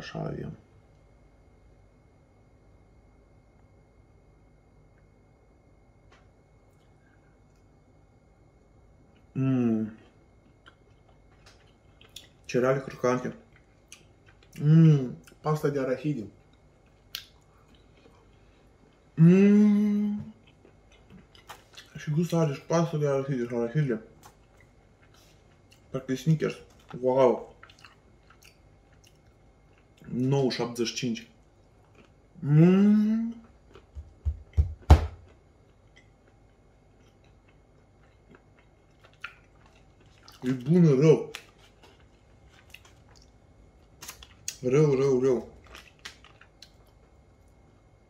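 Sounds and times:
faint chewing: 0:09.9 - 0:15.5, 0:16.3 - 0:19.2, 0:20.2 - 0:22.1, 0:24.1 - 0:30.4, 0:31.2 - 0:32.2, 0:33.3 - 0:34.1, 0:35.3 - 0:47.7.

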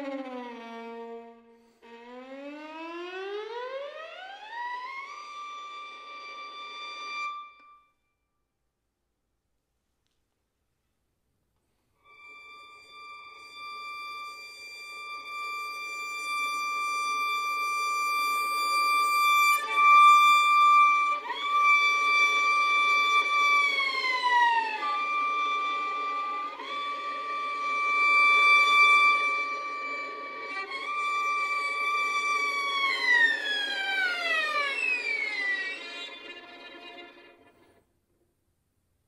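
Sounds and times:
solo violin glissando: 0:00.0 - 0:03.8, 0:04.5 - 0:07.9, 0:12.0 - 0:37.8.

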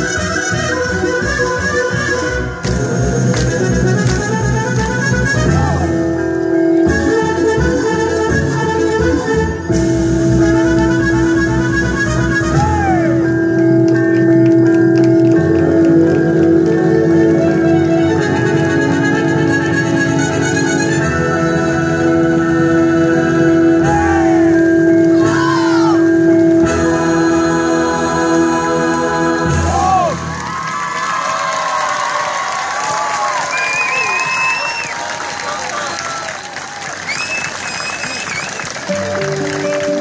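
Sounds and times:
folk dance music with drone: 0:00.0 - 0:32.1, 0:32.7 - 0:40.0
audience applause: 0:13.5 - 0:17.0, 0:30.1 - 0:40.0
audience cheering and whooping: 0:29.7 - 0:40.0.

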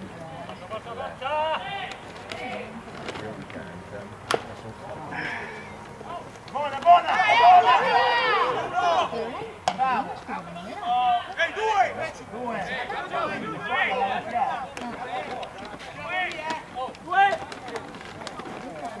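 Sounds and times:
baseball hitting glove crack: 0:04.2 - 0:04.5, 0:09.6 - 0:09.9
high voices shouting: 0:05.2 - 0:10.0, 0:10.7 - 0:17.8.

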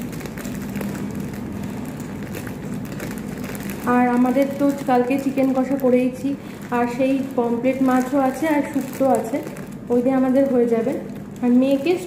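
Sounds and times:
low mechanical hum: 0:00.0 - 0:12.0
plastic wrap crinkling: 0:00.0 - 0:12.0.

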